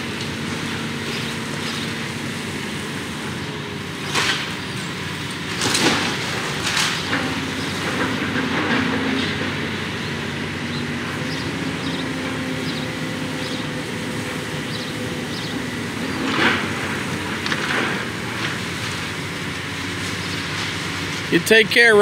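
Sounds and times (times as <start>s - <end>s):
excavator diesel engine running: 0.0s - 22.0s
falling debris crashes: 5.4s - 9.6s.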